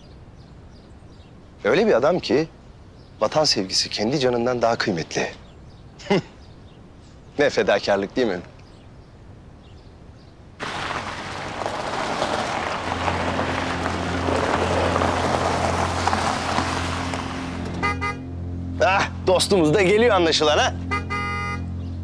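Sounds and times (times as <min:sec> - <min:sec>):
vehicle engines and road noise: 0:00.0 - 0:04.5, 0:05.2 - 0:22.0.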